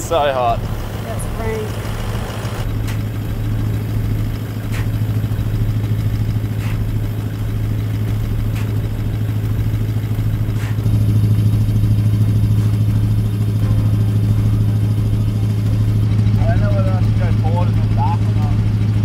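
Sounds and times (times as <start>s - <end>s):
car engine idling: 0.0s - 19.0s
plastic boards scraping sand: 6.6s - 6.9s, 10.5s - 10.8s.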